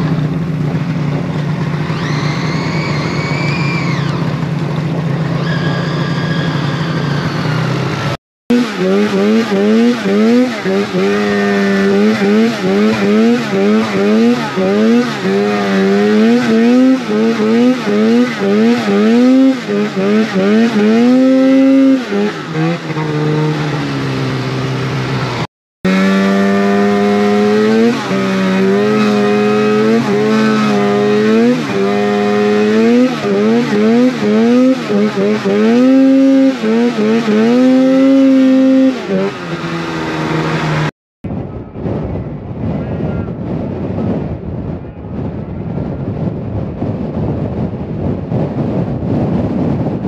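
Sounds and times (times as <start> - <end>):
snowmobile engine revving: 0.0 - 40.9.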